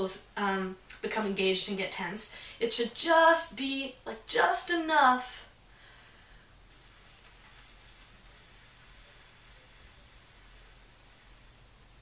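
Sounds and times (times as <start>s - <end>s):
slow steady exhalation: 5.6s - 12.0s.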